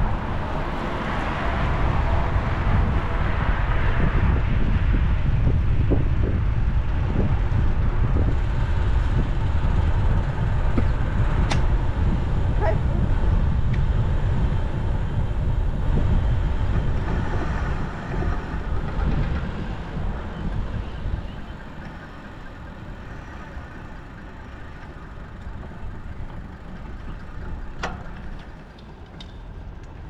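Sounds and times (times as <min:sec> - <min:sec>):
road traffic hum: 0:00.0 - 0:30.0
wind rumbling on camera: 0:00.0 - 0:30.0.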